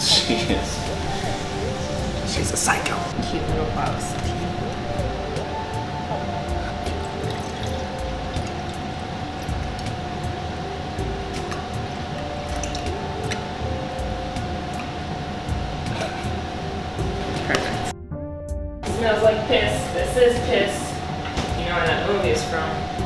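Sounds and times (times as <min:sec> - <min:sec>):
background music: 0:00.0 - 0:23.0
tea pouring into glass: 0:06.5 - 0:10.0, 0:12.5 - 0:12.9.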